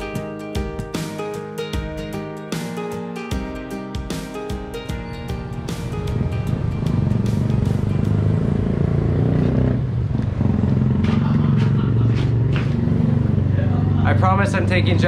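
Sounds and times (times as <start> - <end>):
guitar background music: 0.0 - 9.9
motorcycle engine running: 4.9 - 15.0.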